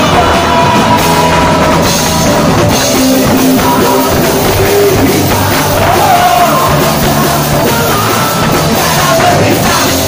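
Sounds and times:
bass guitar: 0.0 - 10.0
person singing into microphone: 0.0 - 10.0
punk rock band playing: 0.0 - 10.0.

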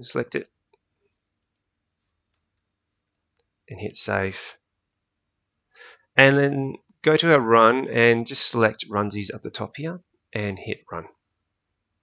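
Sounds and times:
computer mouse clicks: 0.8 - 3.5.

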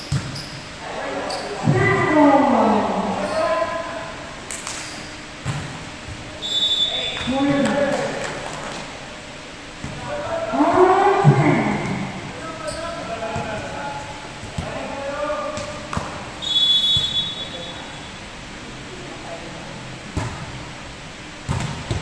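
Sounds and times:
players calling and shouting: 0.0 - 22.0
volleyball smacks and bounces: 15.5 - 16.2, 21.4 - 22.0.

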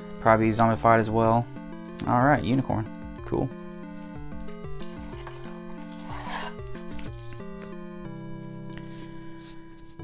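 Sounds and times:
lo-fi chiptune background music: 0.0 - 10.0
trading cards rustling: 3.8 - 10.0.

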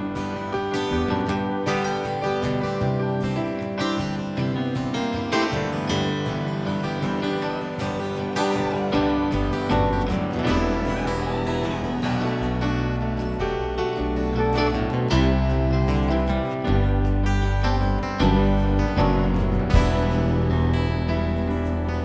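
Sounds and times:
acoustic guitar strummed: 0.0 - 22.0
bass guitar: 0.0 - 22.0
drums: 0.0 - 22.0
electric guitars: 0.0 - 22.0
keyboards: 0.0 - 22.0.

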